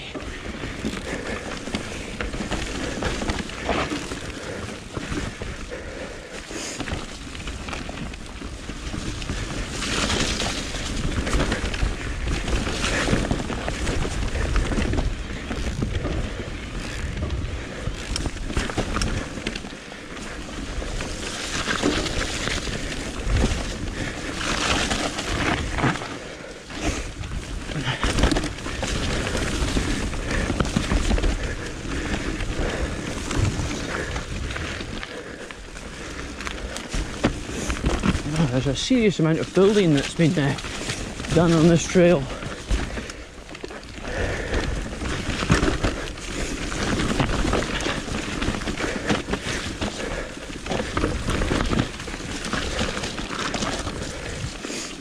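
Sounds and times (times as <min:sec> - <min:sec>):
bike rattling over bumps: 0:00.0 - 0:55.0
bike tyres on dirt: 0:00.0 - 0:55.0
wind rumbling on microphone: 0:00.0 - 0:55.0.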